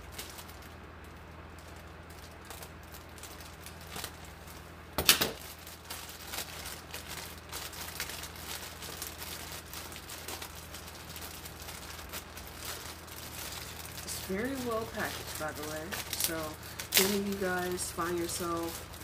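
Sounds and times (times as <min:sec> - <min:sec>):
plastic bag crinkling: 0:00.0 - 0:19.0.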